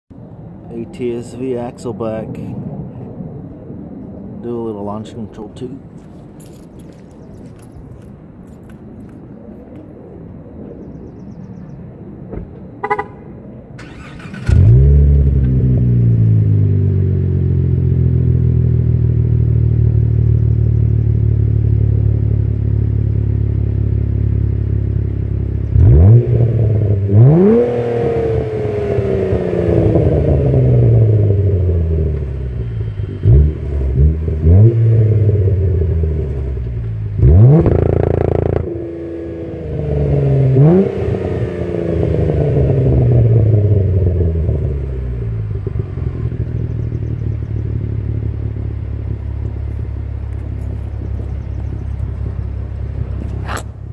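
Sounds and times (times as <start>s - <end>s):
car engine starting and revving: 13.8s - 53.9s.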